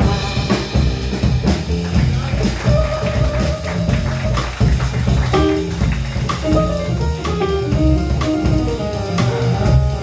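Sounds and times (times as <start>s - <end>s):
drum kit with cymbals: 0.0s - 10.0s
upright bass: 0.0s - 10.0s.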